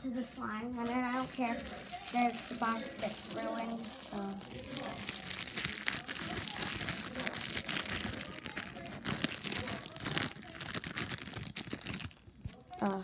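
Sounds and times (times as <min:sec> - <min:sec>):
sticky slime crackling: 0:00.6 - 0:12.6.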